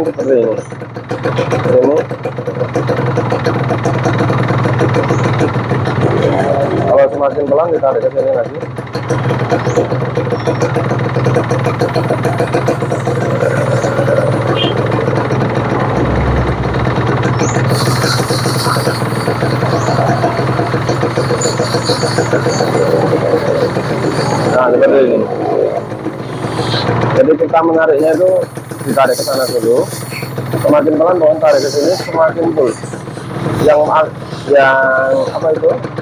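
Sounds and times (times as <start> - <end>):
two-stroke engine idling: 0.0 - 36.0.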